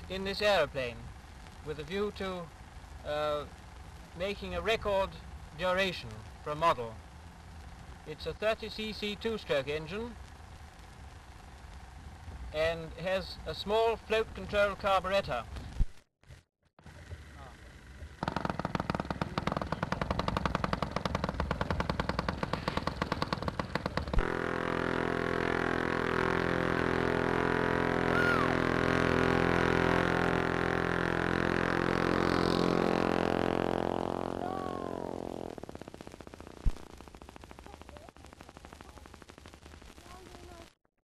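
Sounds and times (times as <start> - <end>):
model aeroplane engine running: 16.8 - 39.2.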